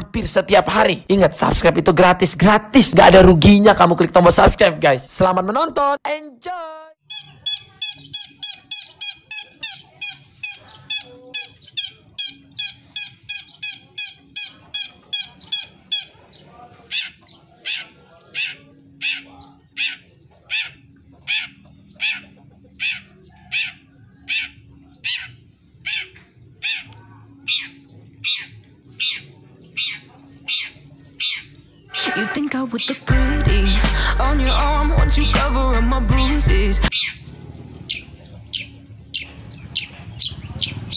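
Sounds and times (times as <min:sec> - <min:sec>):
caged songbird calling: 0:07.0 - 0:35.6, 0:36.2 - 0:40.9.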